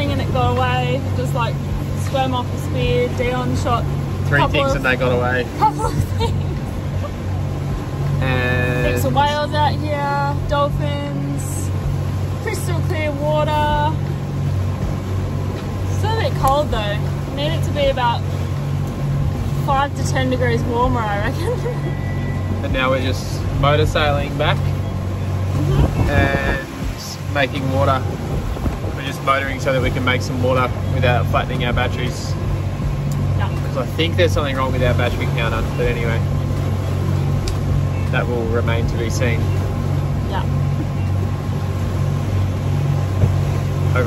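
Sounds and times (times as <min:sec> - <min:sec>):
boat engine humming: 0:00.0 - 0:44.0
water noise: 0:00.0 - 0:44.0
wind: 0:00.0 - 0:44.0
hiss of wind and water: 0:22.6 - 0:44.0.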